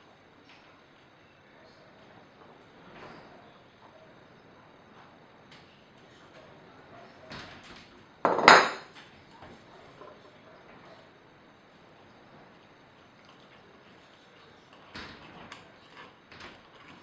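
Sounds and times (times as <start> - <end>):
light knocks on stone countertop: 8.3 - 8.9
loud clunk with short ring: 8.3 - 8.9.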